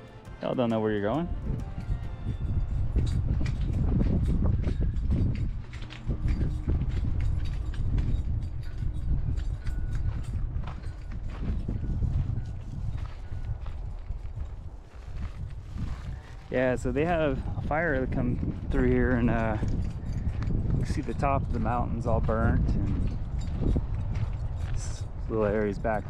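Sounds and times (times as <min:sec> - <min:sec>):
footsteps on brick and gravel: 0:00.0 - 0:26.0
low microphone rumble: 0:01.2 - 0:26.0.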